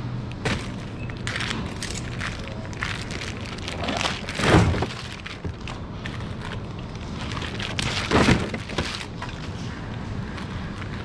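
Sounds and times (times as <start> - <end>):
plastic bottles knocking together: 0.4 - 5.8, 7.4 - 9.4
plastic shrink wrap crinkling: 0.4 - 11.0.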